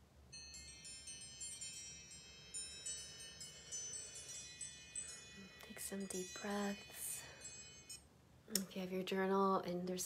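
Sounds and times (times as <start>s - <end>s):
small metal chimes ringing: 0.3s - 8.1s.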